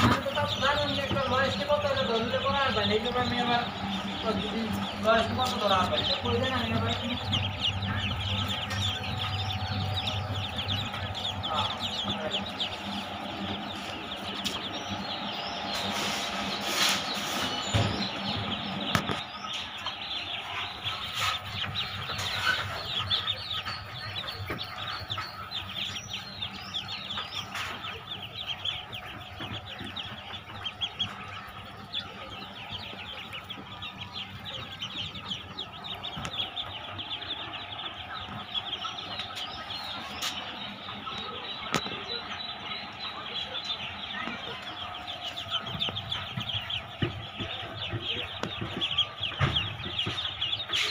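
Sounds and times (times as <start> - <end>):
ducklings peeping: 0.0 - 50.9
sharp knocks: 45.3 - 50.9.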